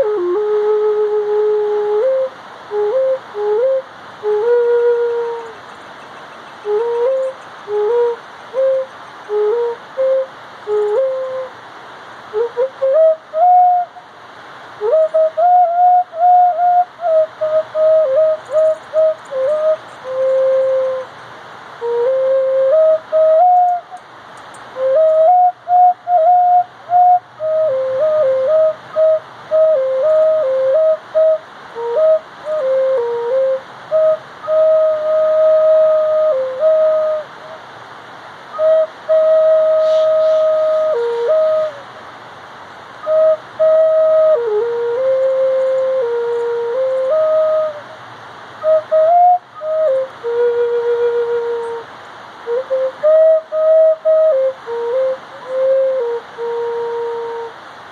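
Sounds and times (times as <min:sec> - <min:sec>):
flute playing slow melody: 0:00.0 - 0:37.8, 0:38.4 - 0:42.2, 0:42.9 - 0:57.9.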